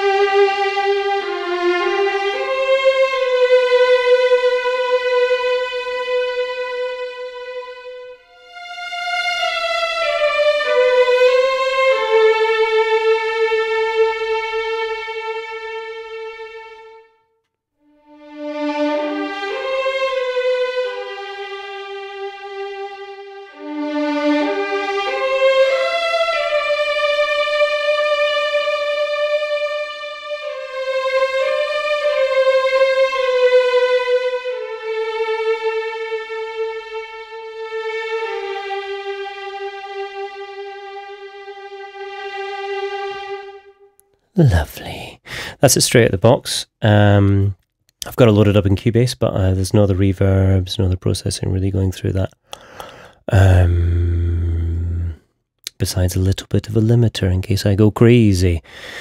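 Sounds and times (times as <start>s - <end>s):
orchestral violin melody: 0.0s - 45.8s.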